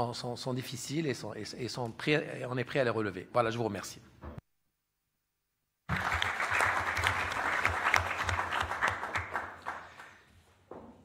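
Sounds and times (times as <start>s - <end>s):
audience applauding: 5.9s - 10.2s.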